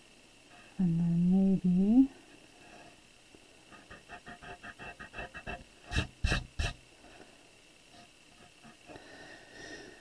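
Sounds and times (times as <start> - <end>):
pencil sketching on paper: 3.8 - 6.8.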